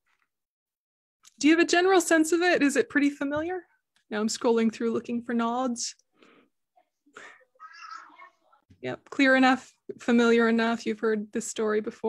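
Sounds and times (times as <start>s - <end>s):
faint high-pitched vocal sound: 6.8s - 8.6s.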